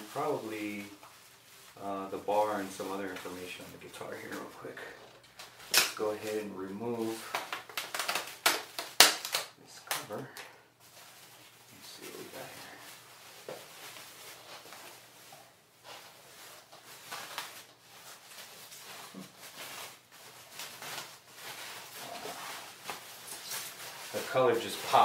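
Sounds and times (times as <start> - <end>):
guitar cover rustling and crinkling: 0.0 - 25.0.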